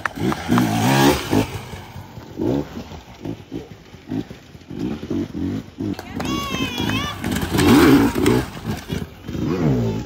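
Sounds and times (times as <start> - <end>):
dirt bike engine revving: 0.0 - 10.0.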